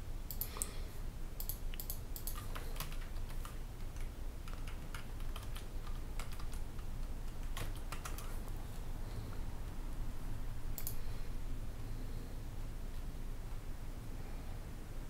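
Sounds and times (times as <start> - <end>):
typing on computer keyboard: 1.4 - 8.4.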